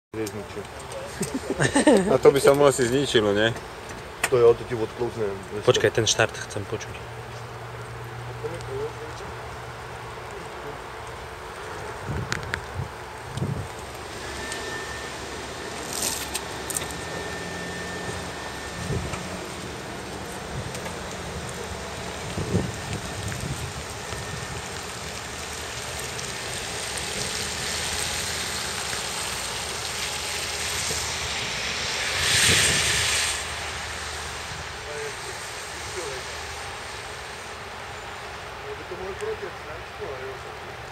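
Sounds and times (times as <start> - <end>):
tyres hissing on wet road: 0.2 - 40.9
electric car high whine: 1.2 - 40.9.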